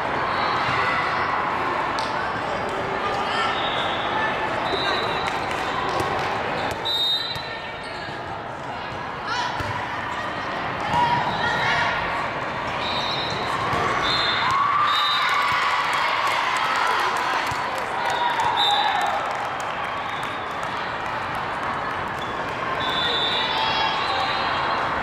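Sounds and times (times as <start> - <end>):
volleyball slaps and bounces: 8.9 - 9.8.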